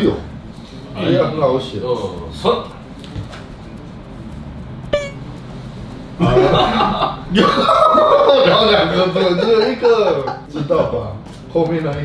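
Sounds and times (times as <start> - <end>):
short horn toot: 5.0 - 5.3.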